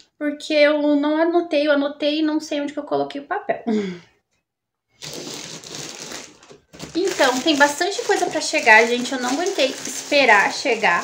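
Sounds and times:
plastic bag crinkling: 5.0s - 11.0s.

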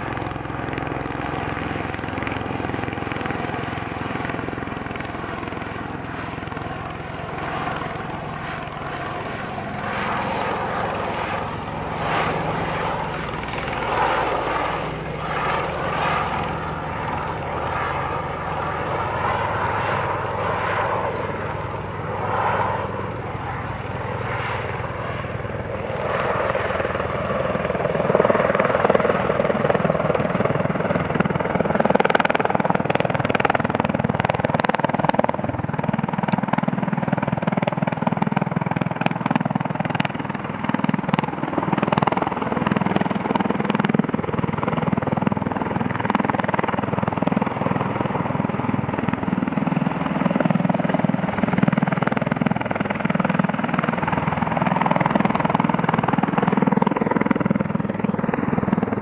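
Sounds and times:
tiltrotor aircraft flying low: 0.0s - 59.0s.

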